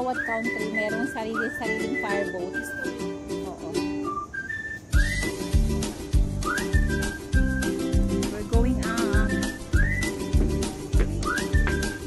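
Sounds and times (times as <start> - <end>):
whistled tune: 0.0 - 3.2, 3.8 - 12.0
steady drum beat: 7.7 - 12.0.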